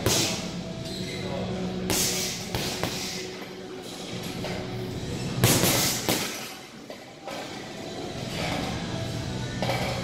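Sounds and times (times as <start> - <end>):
music: 0.0 - 10.0
gloves hitting punching bag: 5.4 - 6.4.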